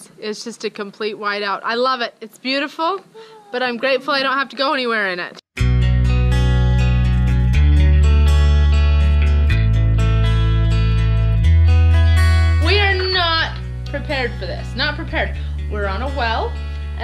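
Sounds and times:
person speaking: 0:02.9 - 0:04.4
acoustic guitar strumming: 0:05.6 - 0:16.9.

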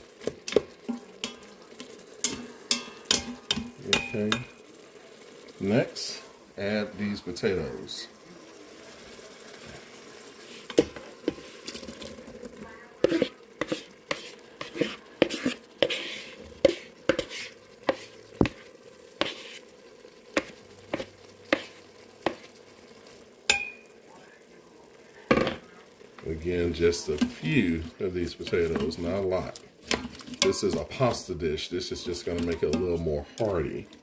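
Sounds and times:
oil sizzling: 0:00.0 - 0:34.0
spatula clacking and scraping pot: 0:00.2 - 0:04.6, 0:10.5 - 0:12.2, 0:13.0 - 0:19.7, 0:20.3 - 0:22.6, 0:23.5 - 0:23.9, 0:27.0 - 0:31.2, 0:31.9 - 0:34.0
potatoes tipped into metal pot: 0:29.8 - 0:31.0.

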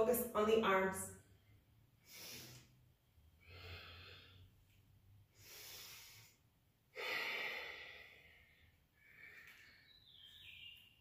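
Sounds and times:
woman breathing audibly: 0:01.4 - 0:10.5.

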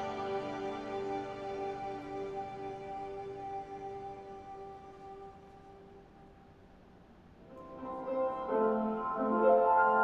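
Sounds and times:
piano music over speakers: 0:00.0 - 0:05.4, 0:07.5 - 0:10.0.

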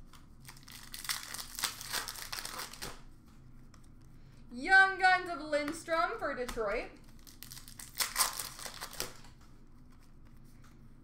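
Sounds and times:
card pack wrapper crinkling and tearing: 0:00.0 - 0:03.0, 0:07.0 - 0:09.4.

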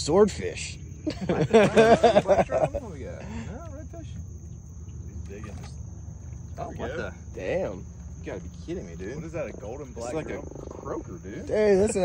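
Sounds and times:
high thin insect drone: 0:00.0 - 0:12.0.

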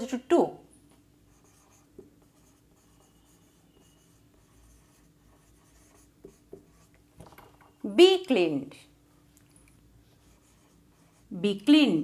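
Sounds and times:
marker writing on whiteboard: 0:01.2 - 0:07.5, 0:10.0 - 0:12.0.

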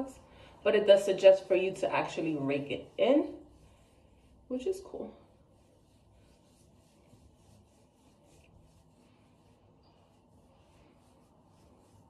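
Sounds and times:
fingers rubbing through wet hair: 0:00.0 - 0:12.0.

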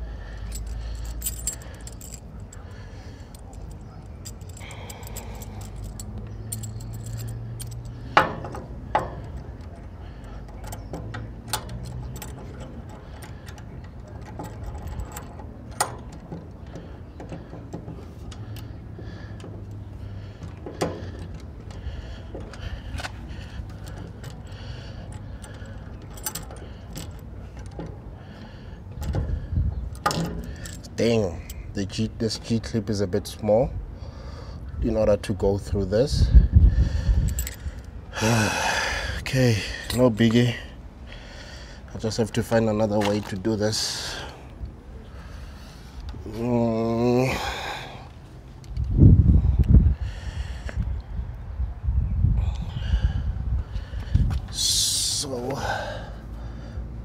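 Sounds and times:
metal clinks and taps: 0:00.4 - 0:28.0, 0:28.9 - 0:31.6.

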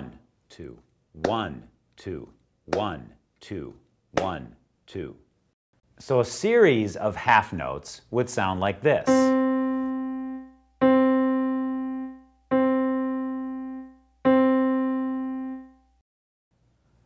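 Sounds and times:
piano note repeated: 0:09.1 - 0:16.0.

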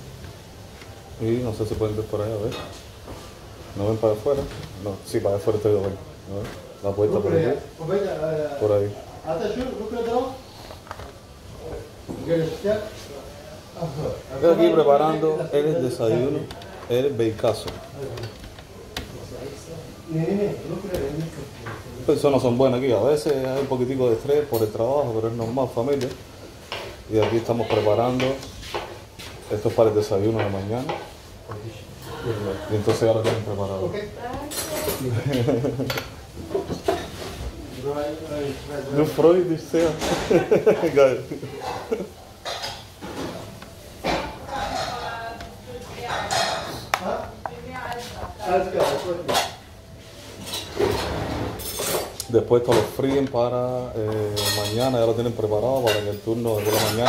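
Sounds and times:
dishes and cutlery clinking: 0:02.4 - 0:03.2, 0:23.2 - 0:31.6, 0:34.4 - 0:37.5, 0:41.5 - 0:47.6, 0:48.7 - 0:49.7, 0:50.4 - 0:53.4, 0:54.0 - 0:57.0.

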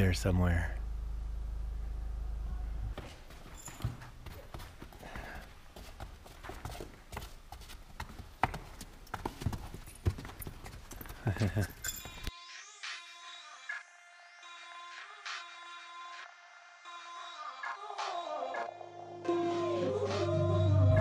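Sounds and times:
hooves clip-clopping on stone steps: 0:03.0 - 0:12.3.

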